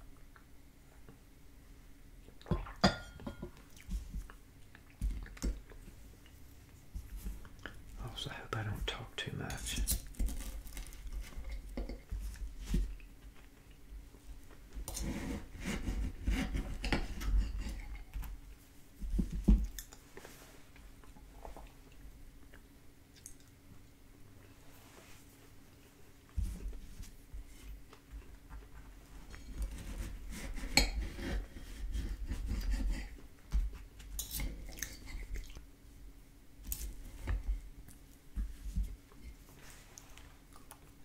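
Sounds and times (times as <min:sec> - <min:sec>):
chewing: 0:03.6 - 0:07.9, 0:19.6 - 0:23.6, 0:34.2 - 0:35.6, 0:39.9 - 0:41.0.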